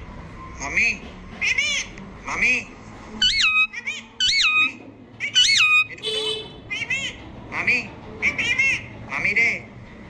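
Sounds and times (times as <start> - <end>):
parakeet chattering: 1.4 - 2.5, 3.2 - 6.0, 6.6 - 9.0
parakeet whistling calls: 3.2 - 6.0.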